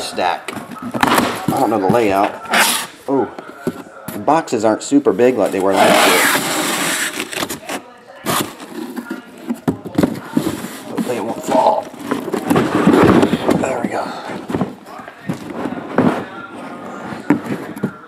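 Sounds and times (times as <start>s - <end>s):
cardboard boxes being handled: 5.2s - 18.0s.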